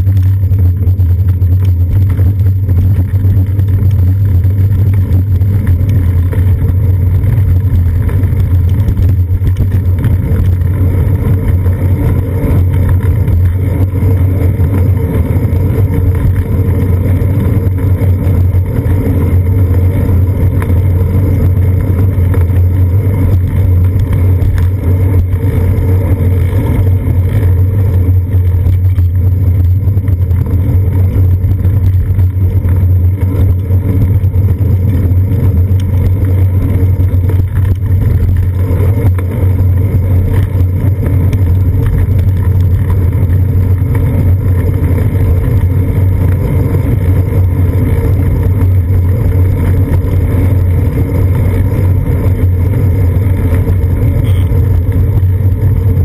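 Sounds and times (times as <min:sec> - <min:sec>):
road vibration through bike frame: 0:00.0 - 0:56.0
wind buffeting camera: 0:00.0 - 0:56.0.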